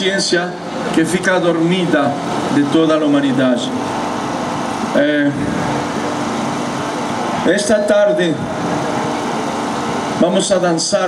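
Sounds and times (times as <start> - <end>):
man speaking into a microphone: 0.0 - 3.8, 4.9 - 5.6, 7.4 - 8.5, 10.2 - 11.0.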